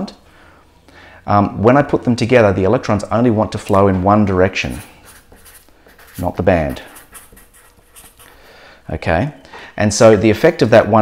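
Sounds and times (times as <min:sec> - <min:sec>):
marker scratching on paper: 0:04.6 - 0:08.5.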